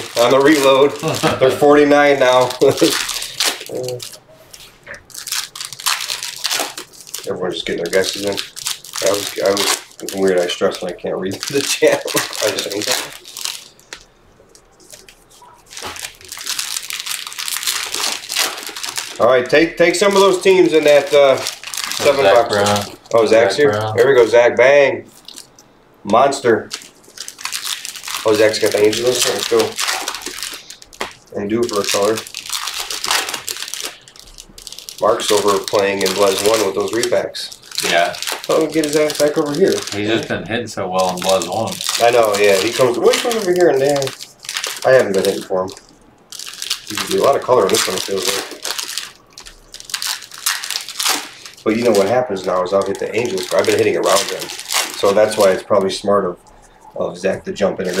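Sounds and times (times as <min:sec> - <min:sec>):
card pack wrappers crinkling: 0:00.0 - 0:40.3, 0:40.9 - 0:58.0.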